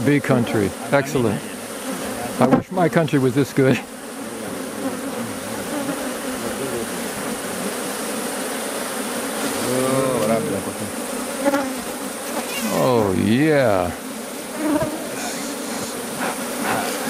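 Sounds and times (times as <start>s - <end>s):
bees buzzing: 0.0s - 17.0s.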